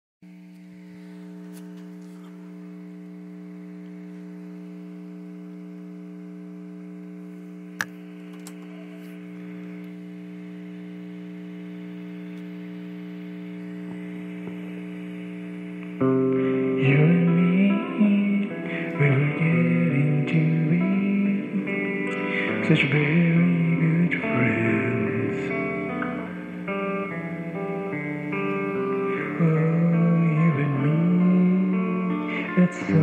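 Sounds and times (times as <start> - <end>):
electrical mains hum: 0.2 - 33.0
sharp click: 7.8 - 8.7.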